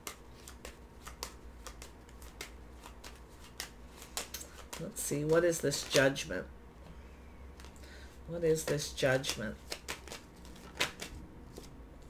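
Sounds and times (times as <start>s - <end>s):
sharp card snaps: 0.0s - 4.8s, 8.6s - 11.7s
cards being shuffled: 0.0s - 6.3s, 7.5s - 12.0s.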